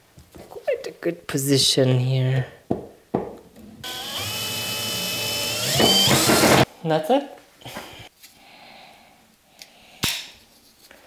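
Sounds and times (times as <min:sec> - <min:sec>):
electric drill whining: 0:03.8 - 0:06.7.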